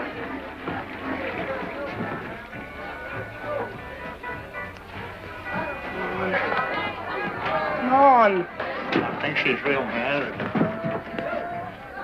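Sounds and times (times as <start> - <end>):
indistinct voices talking: 0.0 - 12.0
music playing: 0.0 - 12.0.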